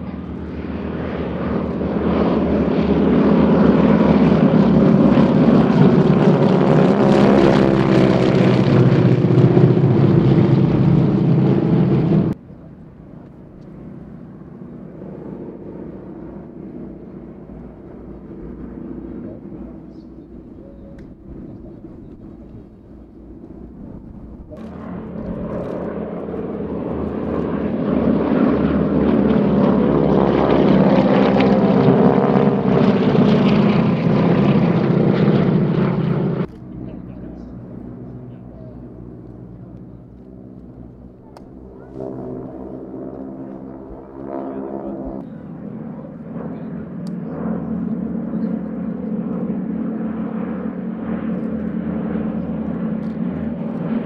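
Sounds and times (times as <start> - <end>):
propeller aircraft drone overhead: 0.0 - 54.0.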